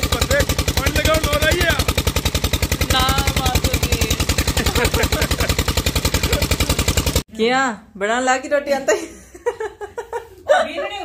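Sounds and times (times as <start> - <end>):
engine running with rapid putt: 0.0 - 7.2.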